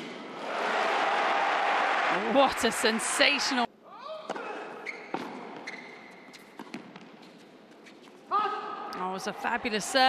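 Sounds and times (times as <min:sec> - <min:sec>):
shoe squeaking on court: 0:04.7 - 0:08.3
tennis ball bouncing: 0:05.1 - 0:07.2.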